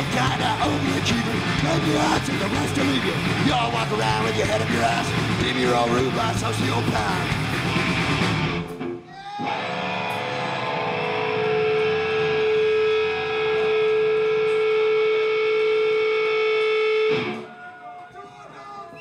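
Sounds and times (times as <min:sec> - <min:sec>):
electric guitar sustained tone: 0:09.6 - 0:17.4.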